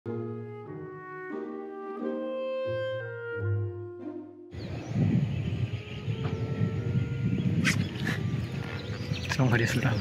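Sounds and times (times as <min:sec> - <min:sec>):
opening music: 0:00.1 - 0:04.6.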